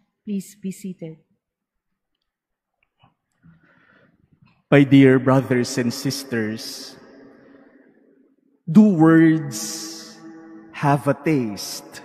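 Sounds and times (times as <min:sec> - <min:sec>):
person speaking: 0:04.6 - 0:07.0, 0:08.7 - 0:12.0.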